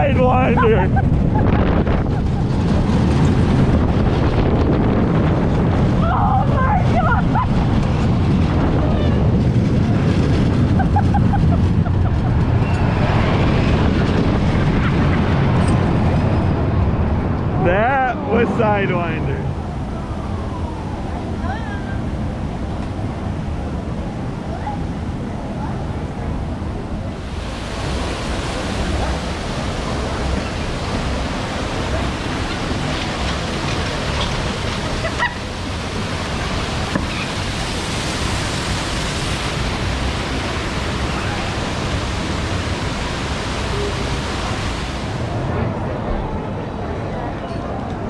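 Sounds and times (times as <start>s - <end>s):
waterfall rushing: 0.0s - 1.1s, 27.1s - 45.5s
muffled outdoor background noise: 0.0s - 48.0s.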